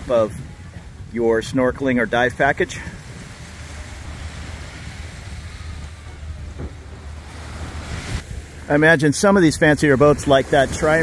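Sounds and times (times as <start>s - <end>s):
faint seaside ambience: 0.0s - 11.0s
wind buffeting microphone: 0.0s - 11.0s.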